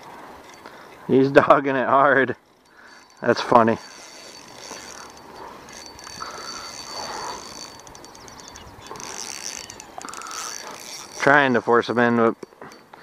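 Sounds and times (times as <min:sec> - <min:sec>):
fishing reel clicking: 0:00.4 - 0:00.9, 0:01.9 - 0:13.0.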